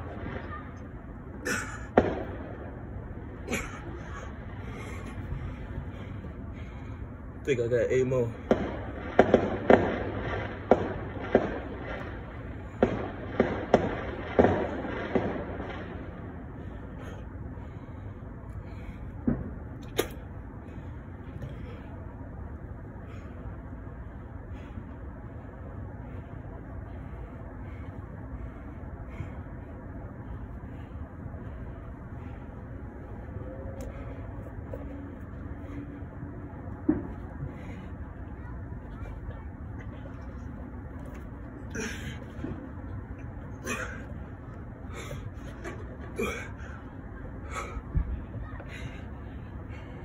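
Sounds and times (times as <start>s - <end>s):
faint steady hum: 0.0s - 50.0s
low background rumble: 0.0s - 50.0s.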